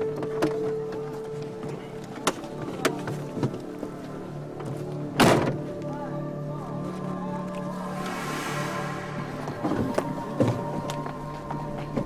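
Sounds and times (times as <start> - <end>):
drama score music: 3.7 - 12.0.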